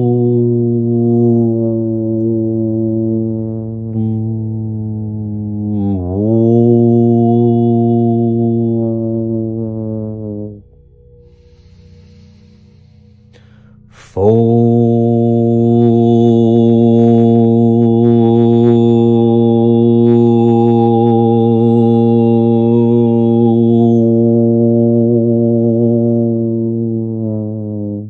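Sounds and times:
man chanting a low note: 0:00.0 - 0:10.6, 0:11.4 - 0:28.0.

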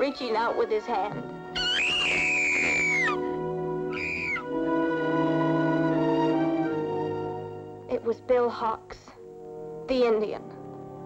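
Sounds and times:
woman screaming: 0:01.6 - 0:03.2, 0:03.9 - 0:04.4.

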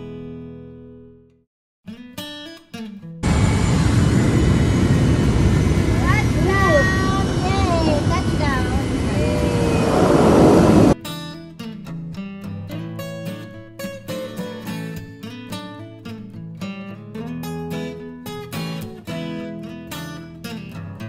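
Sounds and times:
acoustic guitar music: 0:00.0 - 0:03.2, 0:11.0 - 0:21.0
aircraft engine and rushing air: 0:03.2 - 0:11.0
voices calling out: 0:03.4 - 0:11.0.

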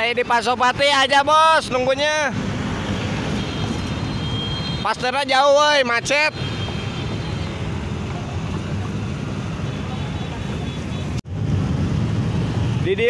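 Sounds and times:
idling vehicles rumbling: 0:00.0 - 0:13.0.

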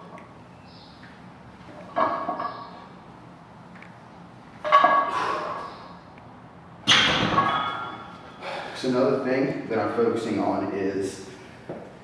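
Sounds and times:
barbell plates clanking: 0:04.6 - 0:05.6, 0:06.9 - 0:08.2.

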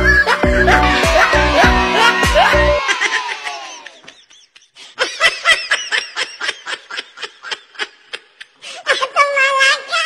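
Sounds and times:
high-pitched laughter: 0:00.0 - 0:09.3.

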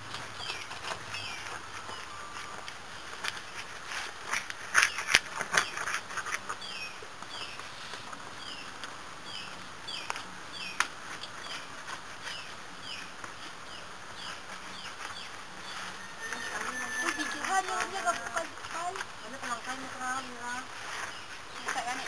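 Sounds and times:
bird chirping: 0:00.0 - 0:03.7, 0:04.4 - 0:22.0.

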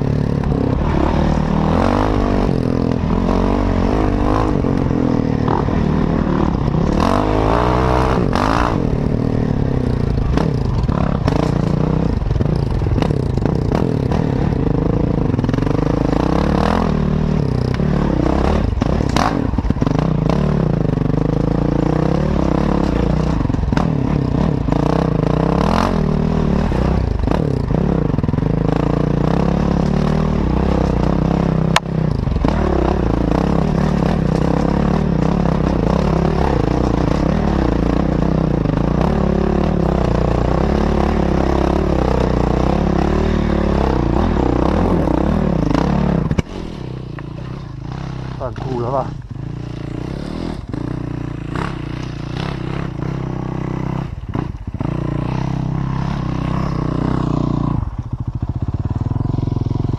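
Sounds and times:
dirt bike engine revving: 0:00.0 - 0:58.1.

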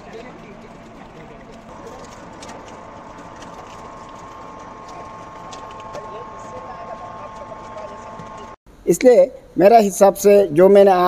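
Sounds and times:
oil press machine running: 0:00.0 - 0:08.6
steady high tone: 0:00.0 - 0:08.6.

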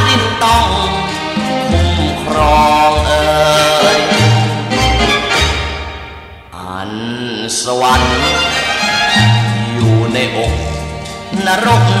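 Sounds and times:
band playing: 0:00.0 - 0:06.8, 0:07.8 - 0:12.0.

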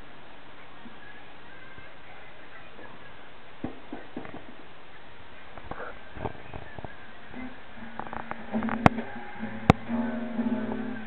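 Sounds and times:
steady background hiss: 0:00.0 - 0:11.0.

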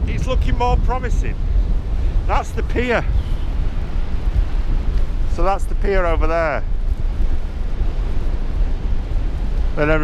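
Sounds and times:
strong gusting wind on microphone: 0:00.0 - 0:10.0.

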